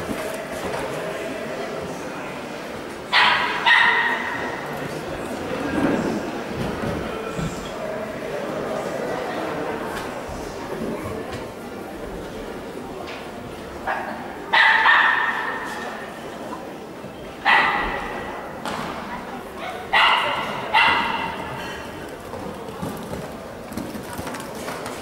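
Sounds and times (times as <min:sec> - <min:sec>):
dog barking: 0:03.1 - 0:04.5, 0:13.9 - 0:15.7, 0:17.4 - 0:18.3, 0:19.6 - 0:21.5.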